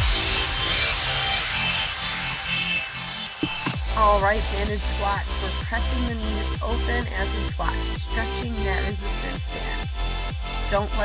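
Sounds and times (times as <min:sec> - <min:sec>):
electronic workout music: 0:00.0 - 0:11.0.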